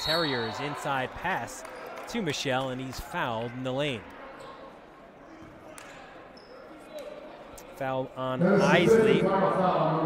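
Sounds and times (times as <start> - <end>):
faint voices echoing in gym: 0.0 - 10.0.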